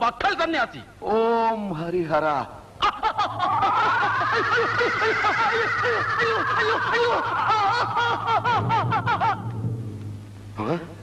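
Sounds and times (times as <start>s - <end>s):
low steady hum: 2.2s - 11.0s
high rising and falling tone: 3.1s - 7.8s.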